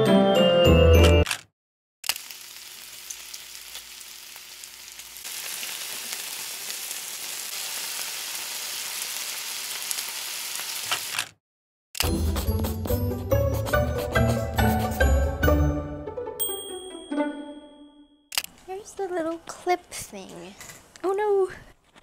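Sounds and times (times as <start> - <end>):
bacon sizzling in a frying pan: 2.1 - 11.1.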